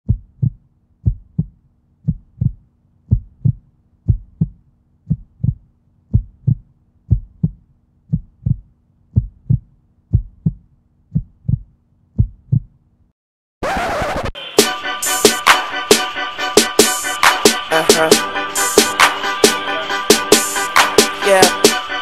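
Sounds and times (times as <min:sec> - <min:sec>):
heartbeat double thump: 0:00.0 - 0:12.7.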